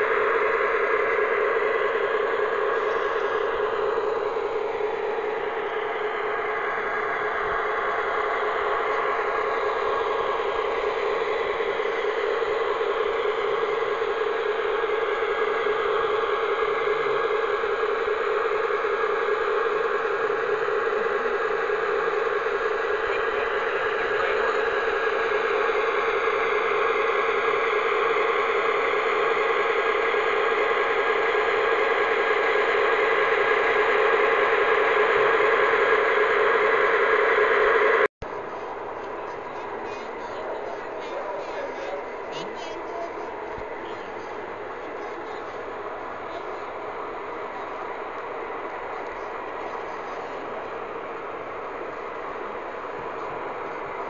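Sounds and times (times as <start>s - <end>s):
model locomotive whirring: 0.0s - 54.0s.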